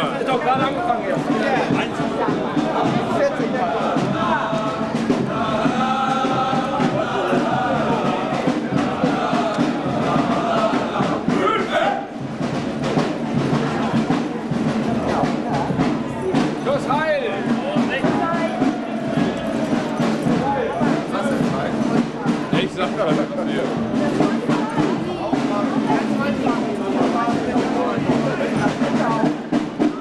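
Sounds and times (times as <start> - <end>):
parade band music: 0.0 - 30.0
people chattering: 0.0 - 30.0.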